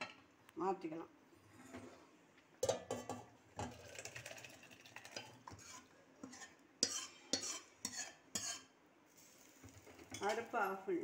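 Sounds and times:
metal utensil clinking on steel pots: 0:02.6 - 0:04.4, 0:05.0 - 0:08.7, 0:09.8 - 0:11.0.

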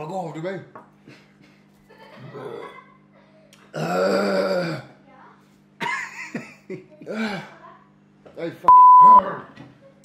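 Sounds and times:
man belching: 0:03.7 - 0:04.9.

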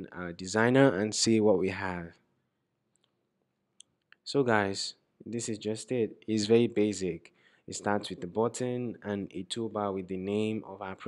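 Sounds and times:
voice: 0:00.0 - 0:02.2, 0:04.3 - 0:11.0.

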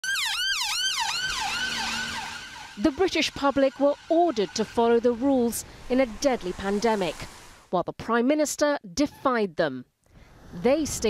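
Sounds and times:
emergency vehicle siren wailing: 0:00.0 - 0:07.1.

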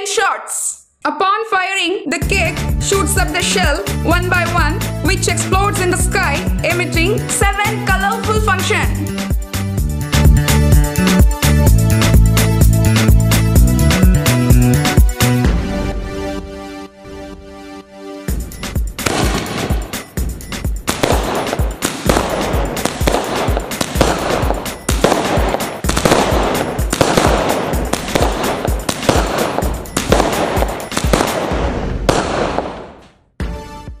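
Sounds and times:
music: 0:01.6 - 0:32.7, 0:33.3 - 0:34.0
fireworks launching and bursting: 0:18.4 - 0:33.2
crackling bangs: 0:18.9 - 0:20.2, 0:20.8 - 0:33.2.

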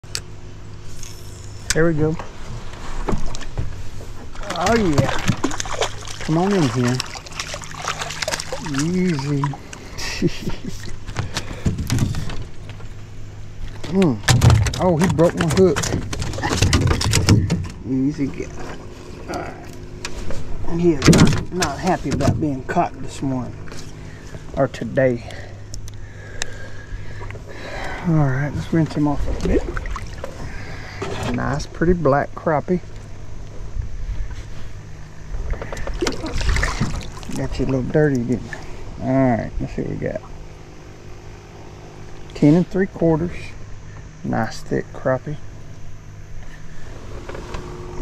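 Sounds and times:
fish flopping against boat: 0:02.3 - 0:22.8, 0:34.2 - 0:38.9
fish splashing out of water: 0:04.4 - 0:12.4, 0:35.6 - 0:37.6.

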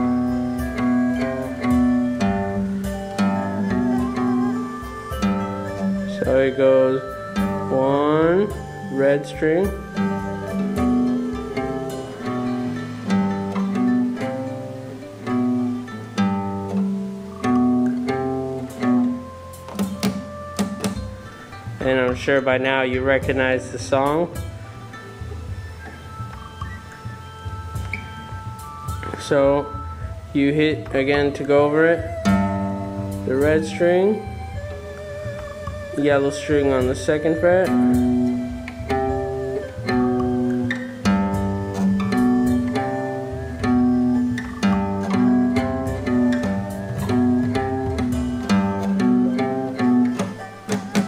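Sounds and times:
guitar riff ringing notes: 0:00.0 - 0:51.0.

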